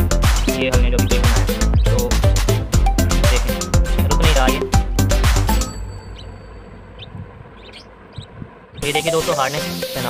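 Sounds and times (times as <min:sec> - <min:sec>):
budgerigar chirping: 0:00.0 - 0:04.6, 0:05.4 - 0:10.0
handling rumble: 0:00.0 - 0:09.0.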